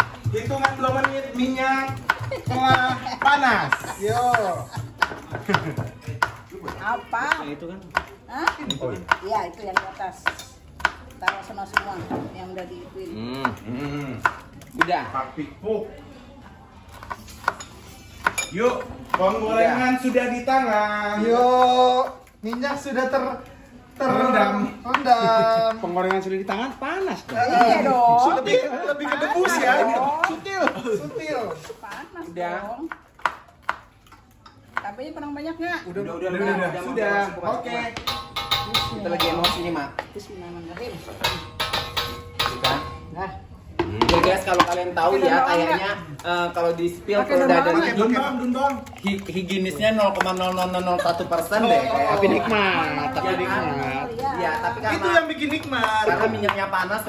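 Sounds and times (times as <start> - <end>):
utensil knocking against cookware: 0.0 - 12.0, 38.0 - 40.1, 41.2 - 43.0
knife chopping on cutting board: 0.0 - 12.2
background chatter: 0.0 - 57.0.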